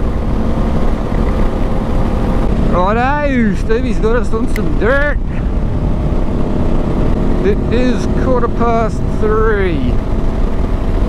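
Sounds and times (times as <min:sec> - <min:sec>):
motorcycle engine cruising: 0:00.0 - 0:11.0
wind: 0:00.0 - 0:11.0.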